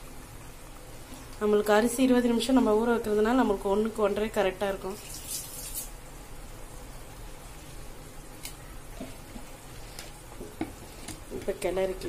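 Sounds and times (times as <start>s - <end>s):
rice bubbling in boiling water: 0.0s - 12.0s.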